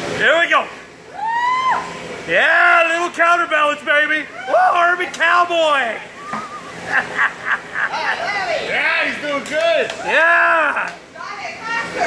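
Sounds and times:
men whooping: 1.1s - 2.7s, 4.3s - 4.9s, 9.9s - 11.0s
men laughing: 6.3s - 8.6s.

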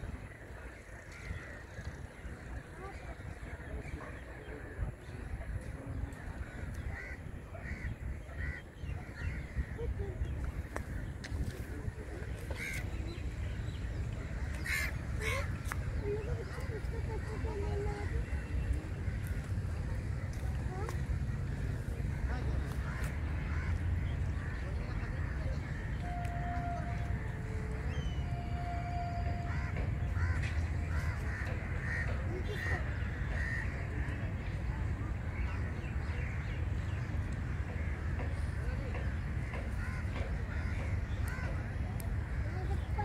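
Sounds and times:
steady low rumble: 0.0s - 43.0s
birds calling: 29.4s - 34.6s.

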